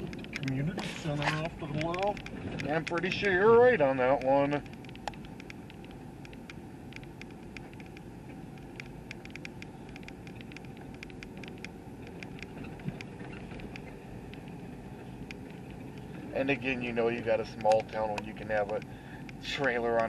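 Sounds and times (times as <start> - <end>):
engine and road hum: 0.0 - 20.0
light ticks: 1.6 - 3.4, 4.0 - 14.6, 15.2 - 20.0.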